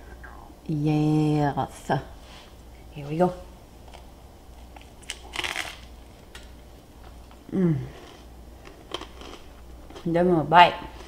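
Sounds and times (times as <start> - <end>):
person chewing toasted bread: 3.8 - 10.1.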